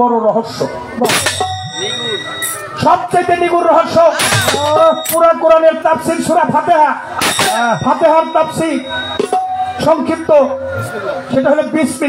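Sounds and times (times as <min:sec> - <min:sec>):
metallic clang ringing: 0:01.0 - 0:03.4, 0:04.1 - 0:05.6, 0:07.1 - 0:10.0.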